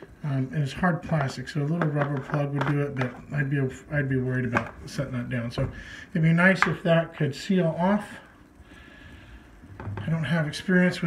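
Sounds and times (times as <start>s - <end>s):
man talking: 0.0s - 8.3s, 9.9s - 11.0s
faint room noise hiss: 0.0s - 11.0s.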